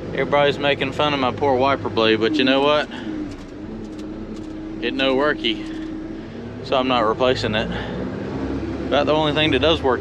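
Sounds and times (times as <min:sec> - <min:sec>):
truck engine humming: 0:00.0 - 0:10.0
light rattles: 0:02.6 - 0:06.0.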